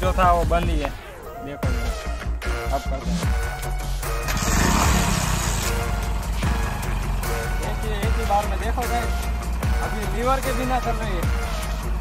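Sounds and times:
background music: 0.0 - 12.0
motorcycle engine starting and idling: 4.0 - 12.0.

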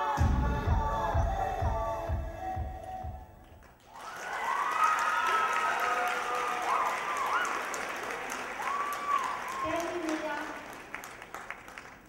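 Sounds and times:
audience applauding: 3.4 - 12.0
cheers and whoops: 3.8 - 10.4.

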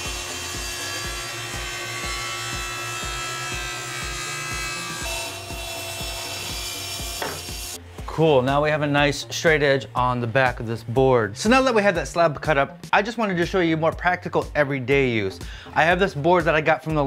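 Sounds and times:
table saw ripping wood: 0.0 - 7.8
background music with steady beat: 0.0 - 17.0.

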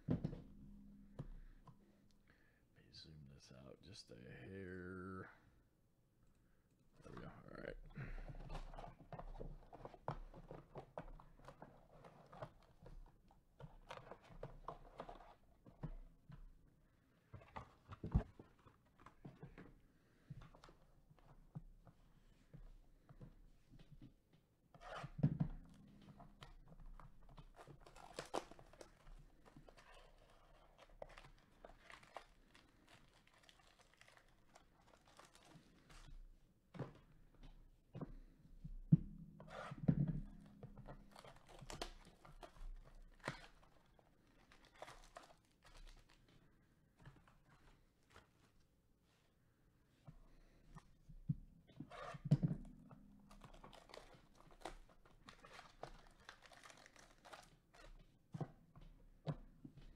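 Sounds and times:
cellophane crinkling: 25.9 - 36.1, 40.8 - 46.4, 53.3 - 58.0.

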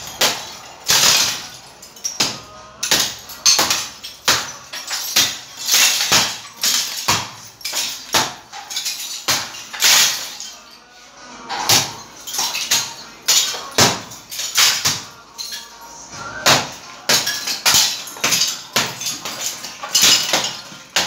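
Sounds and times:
hammer breaking bricks: 0.0 - 10.5, 11.5 - 15.5, 16.4 - 21.0
falling brick fragments rattling: 0.0 - 21.0.

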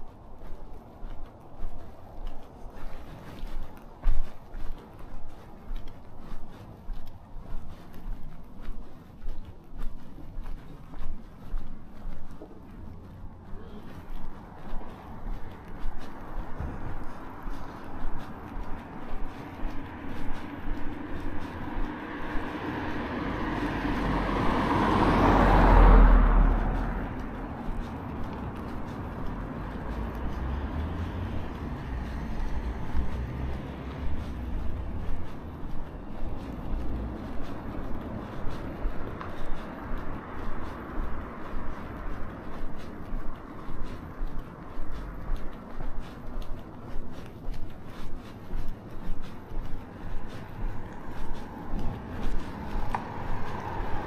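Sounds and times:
footsteps on pavement: 0.0 - 54.0
car passing by: 0.4 - 54.0.

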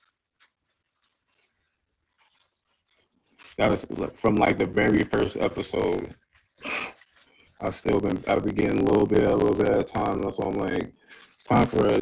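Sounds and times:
faint scratching: 0.0 - 12.0.

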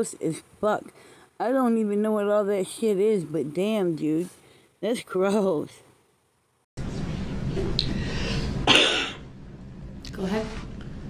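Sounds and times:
steady low hum: 6.8 - 11.0
person coughing: 8.6 - 9.2.

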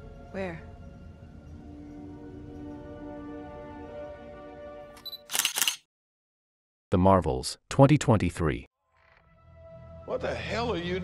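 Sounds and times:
camera focus beep: 5.0 - 5.8
camera shutter click and whirr: 5.0 - 5.9.

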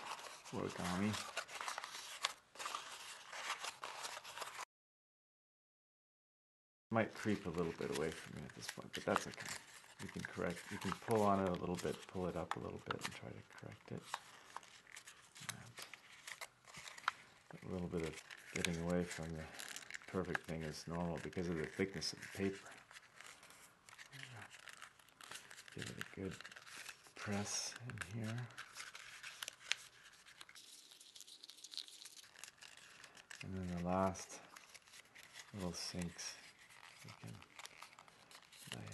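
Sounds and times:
paper crinkling: 0.0 - 4.6, 7.0 - 38.9.

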